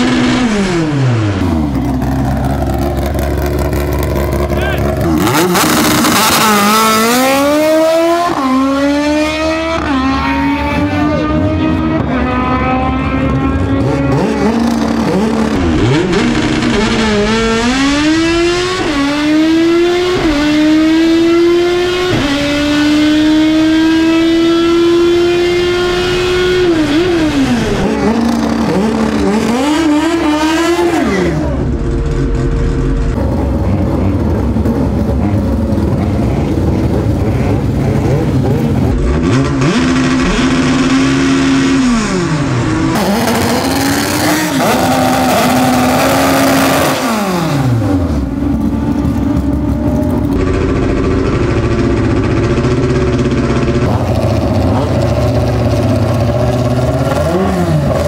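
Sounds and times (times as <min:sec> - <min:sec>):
drag car engine revving through upshifts: 0:00.0 - 0:58.0
engine revving up and down: 0:00.0 - 0:58.0.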